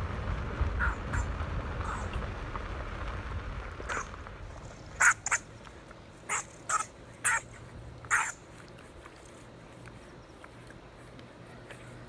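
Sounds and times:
honey badgers snorting: 6.3s - 12.0s.

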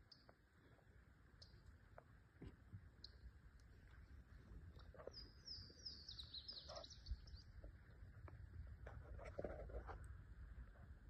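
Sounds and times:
songbird singing: 0.0s - 0.5s, 1.2s - 1.8s, 2.8s - 8.0s.

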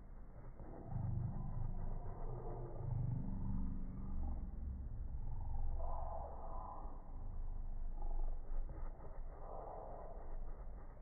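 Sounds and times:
slowed cat purr rumble: 0.0s - 11.0s.

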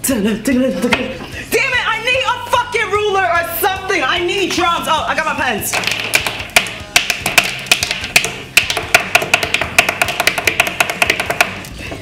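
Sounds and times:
pens drumming on wooden desk: 5.7s - 12.0s.

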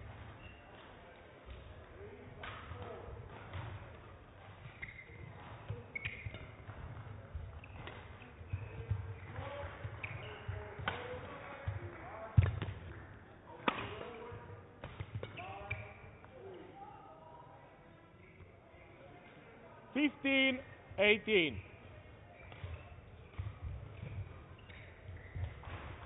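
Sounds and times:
shoes squeaking on court: 0.4s - 0.7s, 4.6s - 11.2s, 22.3s - 26.0s
racquets striking shuttlecock: 13.6s - 14.0s.

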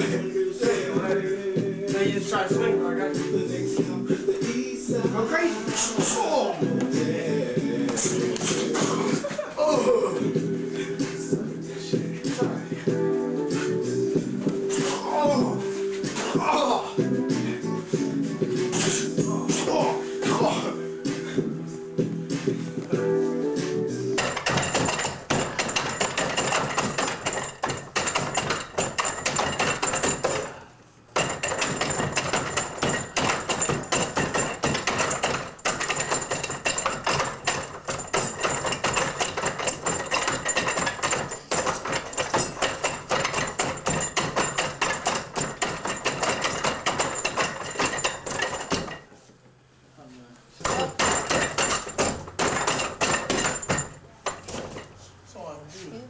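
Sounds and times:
wooden knocking and clacking: 24.2s - 49.2s, 50.6s - 55.0s.

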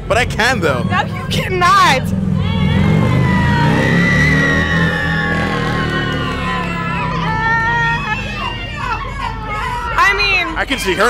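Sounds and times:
women shrieking and calling out: 0.5s - 11.0s.

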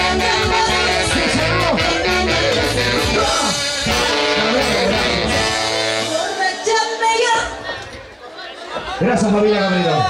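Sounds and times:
live band with singing and guitar: 0.0s - 10.0s.

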